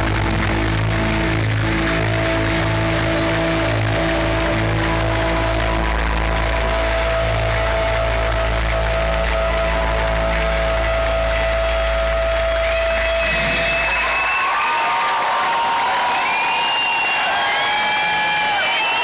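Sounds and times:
crowd cheering and applauding: 0.0 - 19.0.

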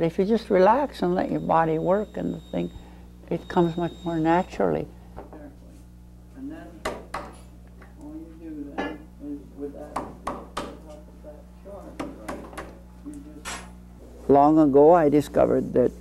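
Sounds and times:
low electrical hum: 0.0 - 16.0
wood knocking on wood: 6.8 - 7.4, 10.0 - 10.8, 12.0 - 12.7.

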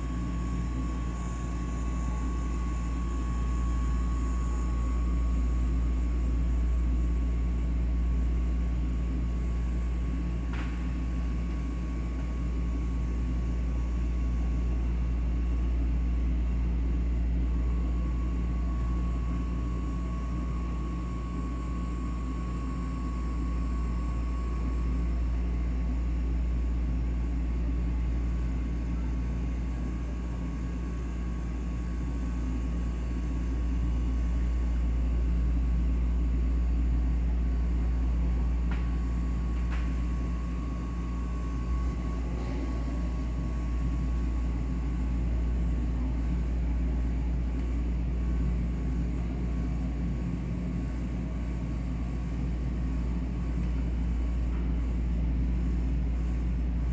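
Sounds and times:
thin steady whine: 0.0 - 56.9.

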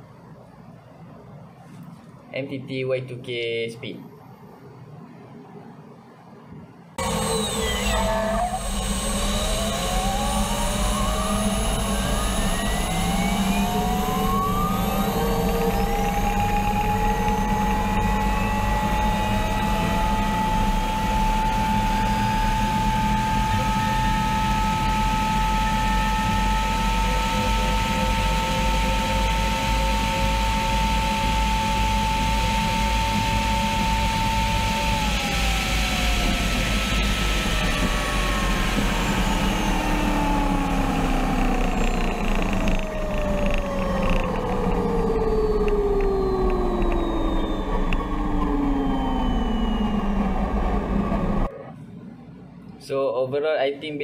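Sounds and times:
gas turbine engine whine: 0.0 - 53.0.

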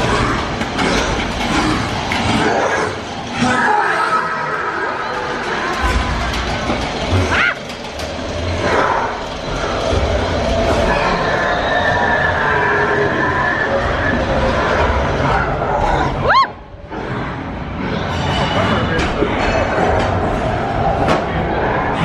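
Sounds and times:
coaster car rumbling on track: 0.0 - 22.0
rising shriek: 10.1 - 15.0.

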